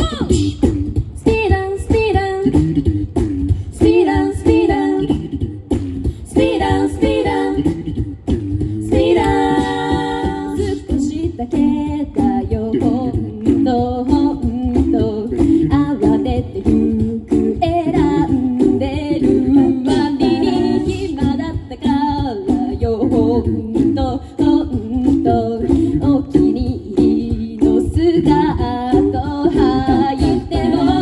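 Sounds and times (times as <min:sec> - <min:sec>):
beatboxed percussion: 0:00.0 - 0:31.0
a cappella group singing: 0:00.2 - 0:31.0.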